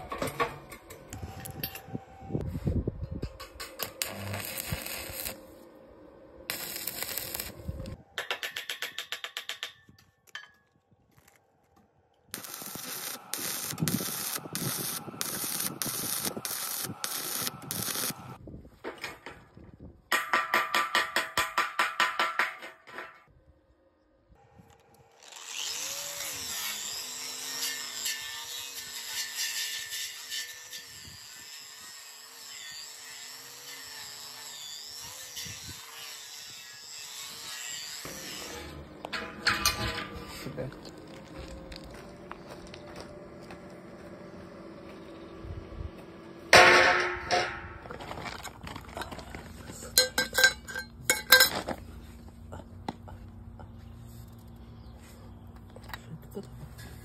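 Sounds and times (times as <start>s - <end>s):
angle grinder grinding steel: 3.7s - 5.5s, 12.4s - 18.4s, 25.1s - 41.9s
hammer strikes on steel: 20.1s - 23.2s.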